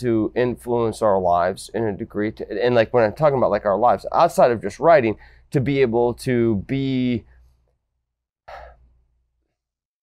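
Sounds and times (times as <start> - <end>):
man exhaling: 8.5 - 9.0.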